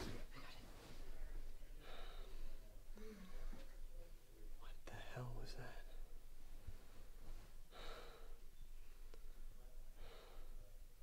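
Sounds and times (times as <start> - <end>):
whispered murmur: 0.0 - 7.1
person breathing: 1.8 - 3.7, 7.7 - 9.4, 10.0 - 10.7.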